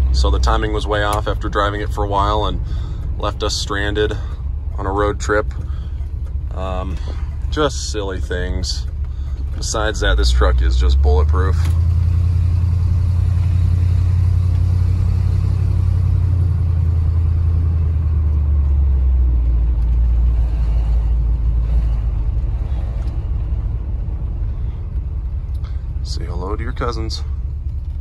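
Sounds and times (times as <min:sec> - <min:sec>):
truck engine rumble inside cab: 0:00.0 - 0:28.0.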